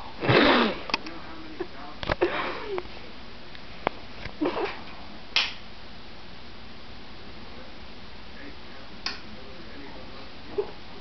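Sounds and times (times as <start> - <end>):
breathy laughs: 2.2 - 2.8.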